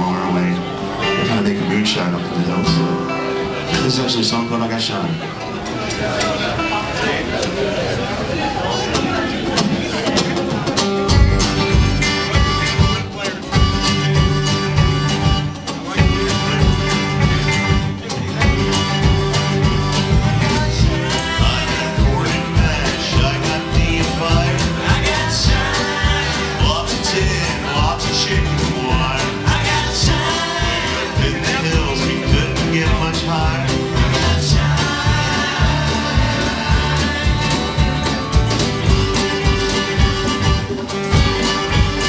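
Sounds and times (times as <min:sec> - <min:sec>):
strummed acoustic guitars: 0:00.0 - 0:42.0
plucked upright bass: 0:08.9 - 0:42.0
person singing lead vocal: 0:12.4 - 0:42.0.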